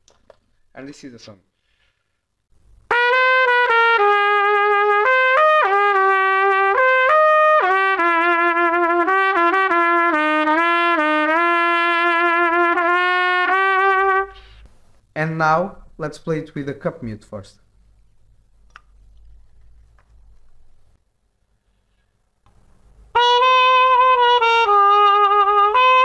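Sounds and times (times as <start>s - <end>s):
trumpet melody: 2.9s - 14.6s, 23.1s - 26.0s.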